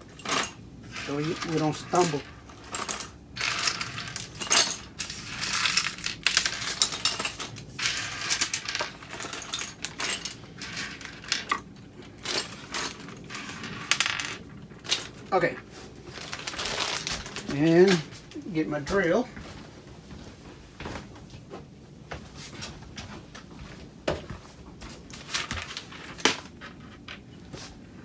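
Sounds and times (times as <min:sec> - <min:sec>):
metal screws clinking: 0:00.0 - 0:15.4
plastic bag crinkling: 0:15.3 - 0:18.3.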